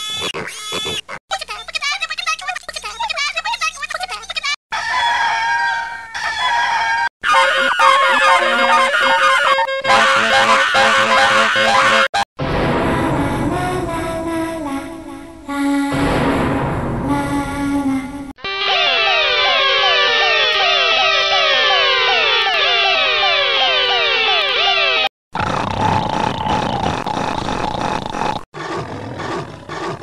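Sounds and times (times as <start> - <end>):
fast warbling animal-like calls: 7.2 - 9.7.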